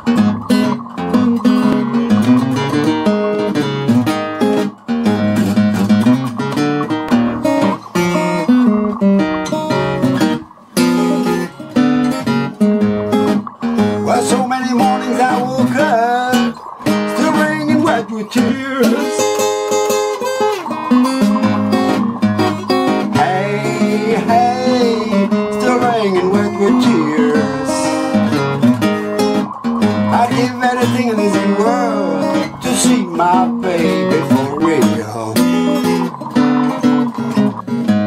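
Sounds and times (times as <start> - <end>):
acoustic guitar blues accompaniment: 0.0 - 38.0.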